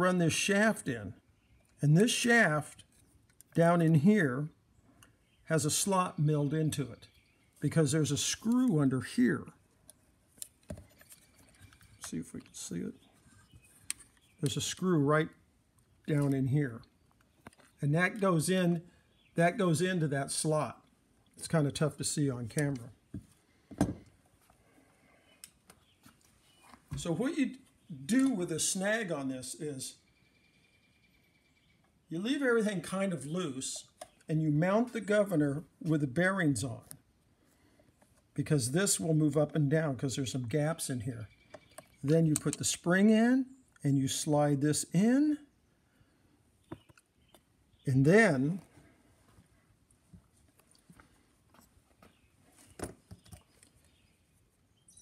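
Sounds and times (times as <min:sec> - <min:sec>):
clicks of metal parts and tools: 0:28.1 - 0:28.4, 0:41.5 - 0:42.7.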